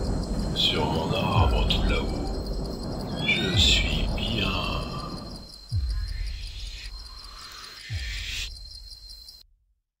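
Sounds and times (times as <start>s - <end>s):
crickets chirping: 0.0s - 9.5s.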